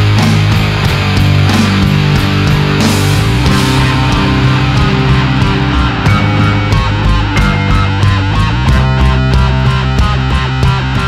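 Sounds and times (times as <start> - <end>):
loud rock music with guitar: 0.0 - 11.0.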